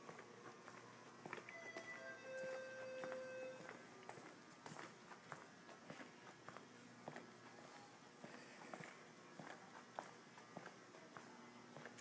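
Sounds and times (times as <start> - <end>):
faint music: 0.0 - 12.0
footsteps on tiled floor: 0.0 - 12.0.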